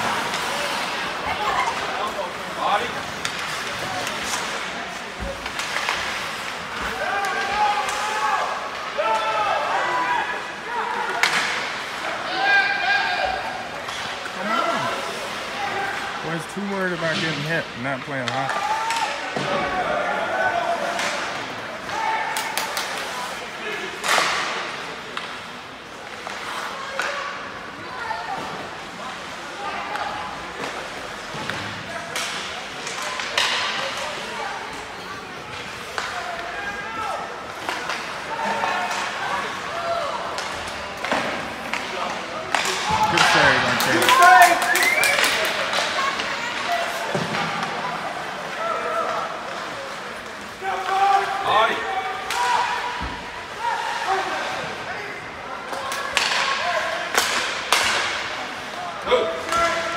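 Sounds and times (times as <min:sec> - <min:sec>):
spectators chattering and calling: 0:00.0 - 0:59.9
hockey sticks and puck knocking: 0:30.6 - 0:34.0, 0:40.2 - 0:47.7, 0:55.7 - 0:58.4.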